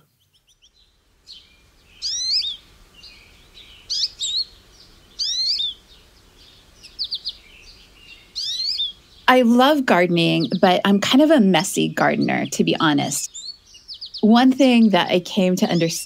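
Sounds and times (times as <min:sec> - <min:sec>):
faint steady background noise: 0:00.0 - 0:16.0
songbird singing whistles: 0:00.2 - 0:04.5, 0:05.1 - 0:05.8, 0:06.4 - 0:09.0.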